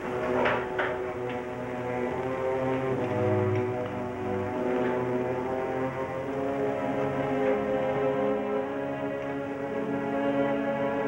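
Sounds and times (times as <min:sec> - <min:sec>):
sustained music chords: 0:00.0 - 0:11.0.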